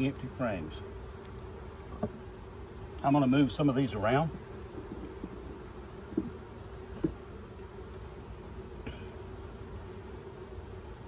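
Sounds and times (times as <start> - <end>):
honeybees buzzing: 0.0 - 11.0.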